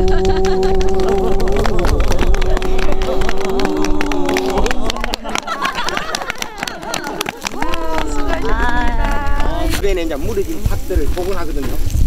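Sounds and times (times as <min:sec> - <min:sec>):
gloved hands applauding: 0:00.0 - 0:09.5.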